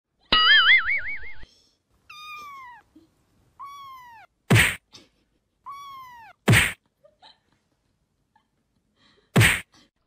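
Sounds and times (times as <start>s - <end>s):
cat meowing: 2.1s - 2.9s, 3.6s - 4.4s, 5.6s - 6.4s.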